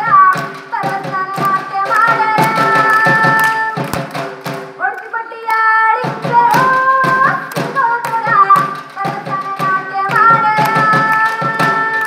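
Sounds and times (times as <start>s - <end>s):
girl singing into microphone: 0.0s - 4.0s, 4.8s - 12.0s
sharp percussive beat: 0.0s - 12.0s.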